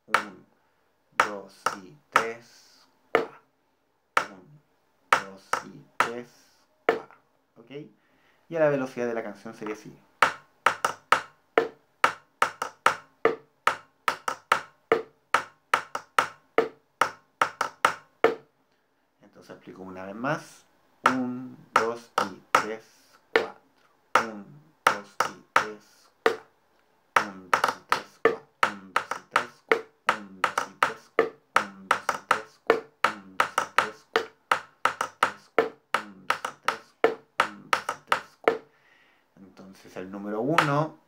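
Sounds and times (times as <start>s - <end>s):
sticks tapping on plastic containers: 0.1s - 0.4s, 1.2s - 2.4s, 3.2s - 3.4s, 5.1s - 6.2s, 6.9s - 7.2s, 9.6s - 18.5s, 21.0s - 22.8s, 23.4s - 23.6s, 24.2s - 26.5s, 27.2s - 38.7s, 40.6s - 40.9s.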